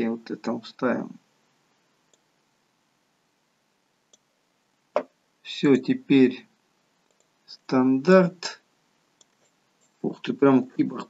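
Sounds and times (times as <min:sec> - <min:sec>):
computer mouse click: 0:07.0 - 0:07.3, 0:09.2 - 0:09.5.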